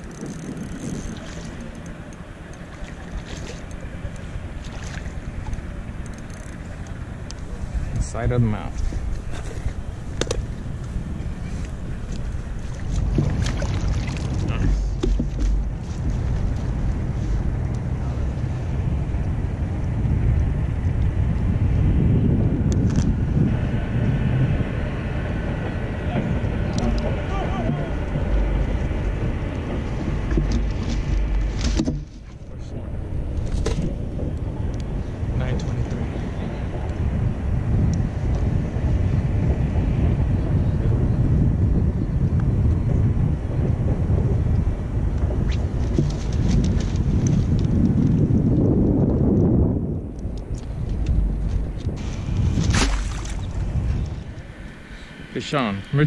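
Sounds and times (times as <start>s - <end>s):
wind rumbling on microphone: 0.0s - 56.0s.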